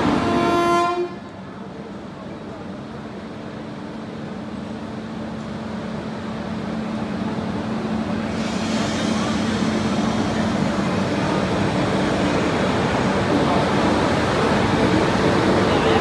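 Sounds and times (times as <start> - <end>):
electric locomotive humming: 0.0 - 16.0
hiss: 8.2 - 11.2.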